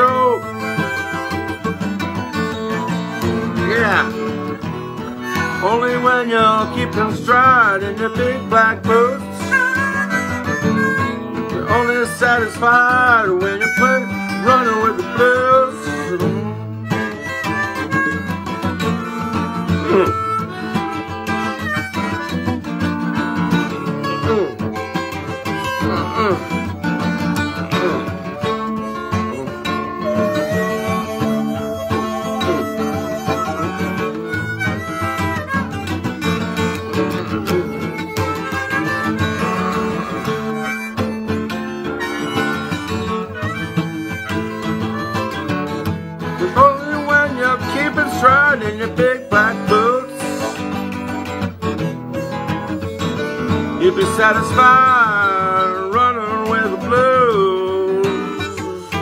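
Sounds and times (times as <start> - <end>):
acoustic guitar picking: 0.0 - 59.0
harmonica bent notes: 0.0 - 59.0.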